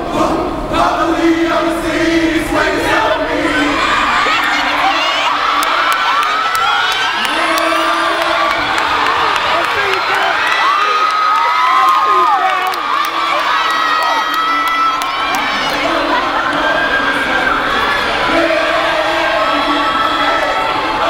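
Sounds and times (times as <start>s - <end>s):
large audience cheering and screaming: 2.9s - 21.0s.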